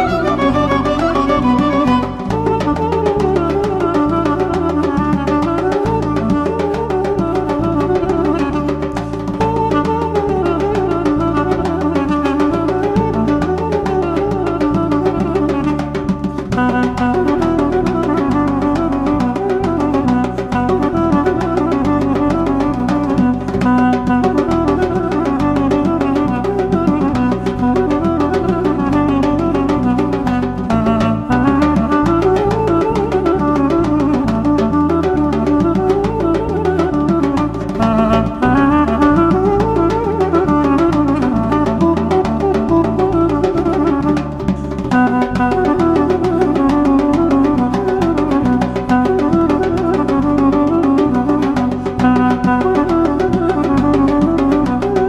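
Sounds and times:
duduk melody: 0.0 - 55.0
steady drum rhythm: 0.0 - 55.0.

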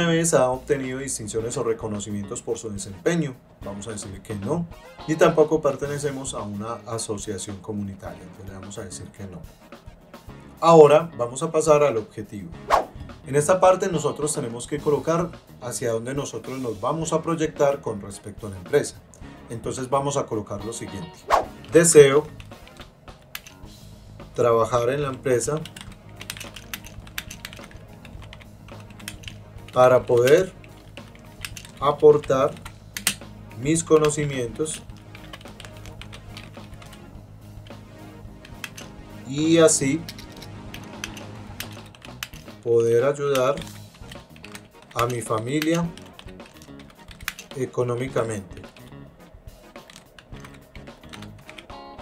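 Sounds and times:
background music: 0.0 - 52.0
computer keyboard typing: 21.6 - 23.6, 25.0 - 37.8, 38.4 - 39.0, 40.0 - 42.6, 43.3 - 47.7, 48.6 - 48.9, 49.6 - 51.8.

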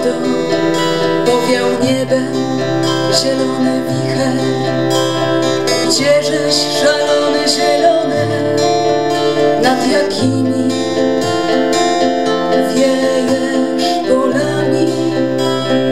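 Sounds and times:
acoustic guitars playing: 0.0 - 15.9.

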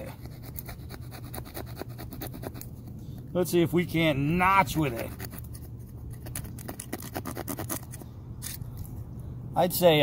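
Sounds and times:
knife cutting and scraping wood: 0.0 - 3.4, 4.5 - 9.0.

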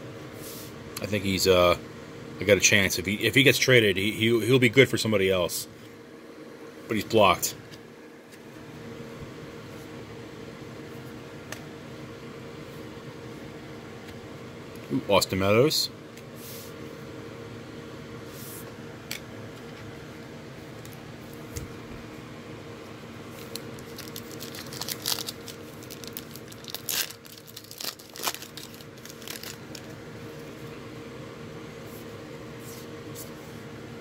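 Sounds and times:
steady background hum: 0.0 - 34.0
wrapper tearing and crinkling: 23.4 - 30.0.

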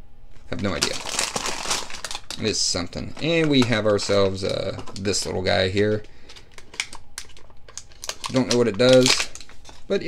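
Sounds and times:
plastic packaging crinkling: 0.5 - 10.0.

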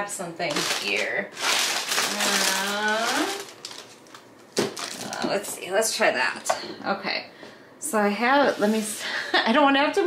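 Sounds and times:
woman saying um: 2.1 - 3.4.

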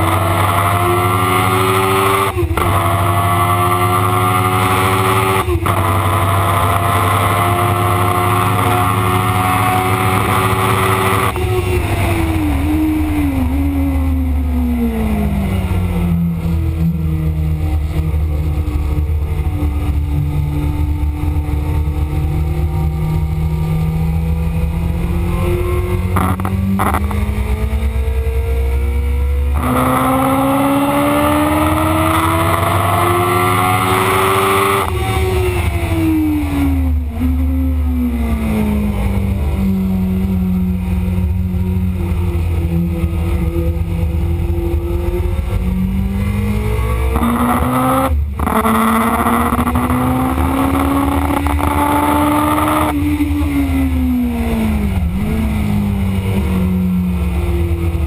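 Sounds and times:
motorcycle engine at full throttle: 0.0 - 58.0.

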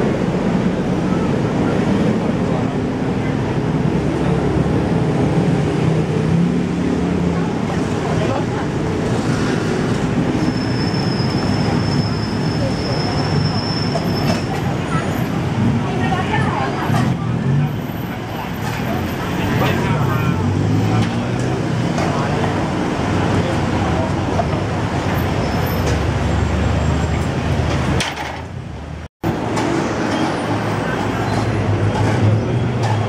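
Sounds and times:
indistinct chatter of passers-by: 0.0 - 33.0
slow-moving cars and motorbikes: 0.0 - 33.0.

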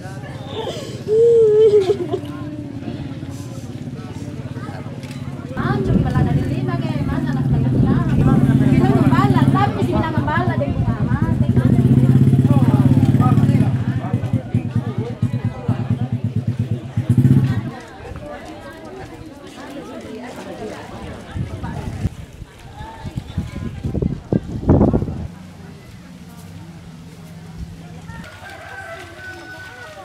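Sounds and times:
motorcycle engine running: 0.0 - 18.7, 23.5 - 30.0
rooster crowing: 28.1 - 30.0.

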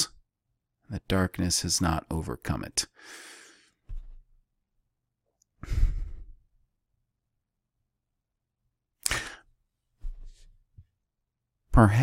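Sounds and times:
man sighing: 5.6 - 6.4, 9.0 - 9.5.

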